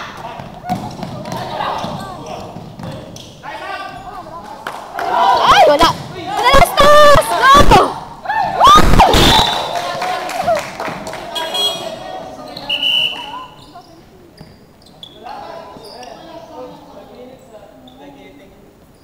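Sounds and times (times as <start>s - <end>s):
basketball bouncing on hardwood floor: 0.3s - 3.1s
loud shouting voices: 4.9s - 13.6s.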